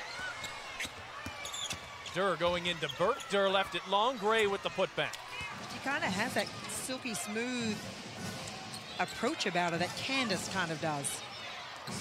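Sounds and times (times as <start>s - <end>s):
arena crowd noise: 0.0s - 12.0s
sneaker squeaks: 0.1s - 3.5s, 5.3s - 12.0s.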